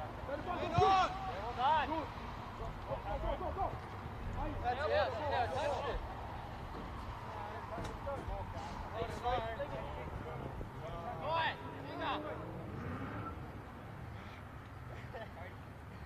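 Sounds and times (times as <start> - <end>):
footballers shouting calls: 0.0 - 12.8.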